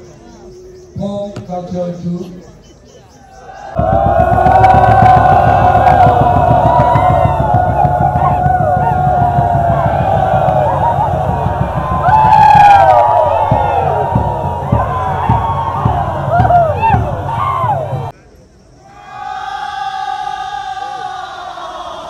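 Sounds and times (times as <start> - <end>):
low rumble: 3.8 - 18.1
whoops and yells: 3.8 - 18.1.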